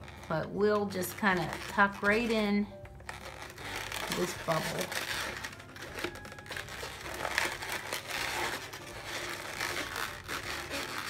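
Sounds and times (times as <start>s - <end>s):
balloons rubbing and creaking: 0.0s - 11.0s.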